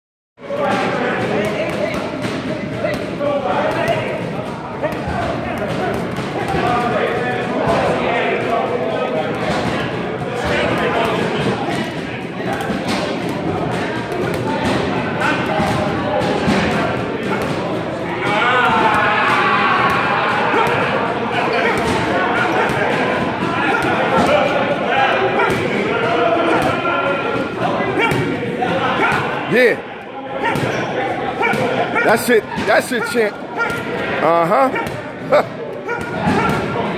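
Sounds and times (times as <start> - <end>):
voices of people: 0.4 - 36.9.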